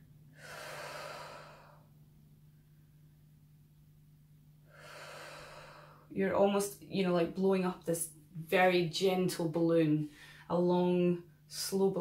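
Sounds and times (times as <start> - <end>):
faint low hum: 0.0 - 12.0
woman breathing out: 0.3 - 2.0, 4.6 - 6.1.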